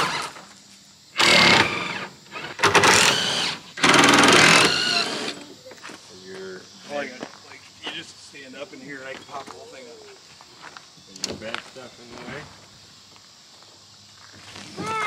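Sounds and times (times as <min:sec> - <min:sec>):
cordless impact wrench bursts: 0:00.0 - 0:00.4, 0:01.2 - 0:05.4
quiet voices: 0:08.7 - 0:10.3.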